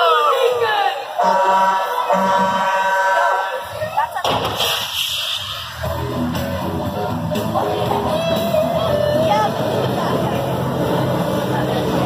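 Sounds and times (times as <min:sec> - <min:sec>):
amplified voice calling: 0:07.0 - 0:10.3.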